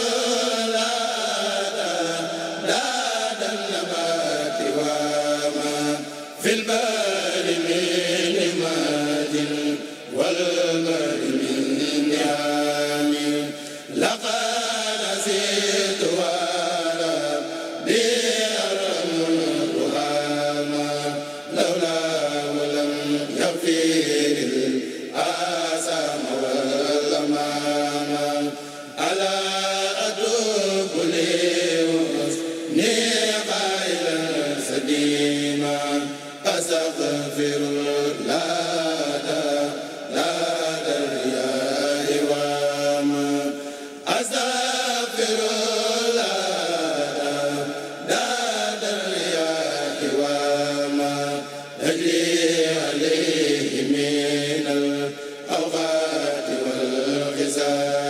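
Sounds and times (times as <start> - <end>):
men chanting in unison: 0.0 - 58.0.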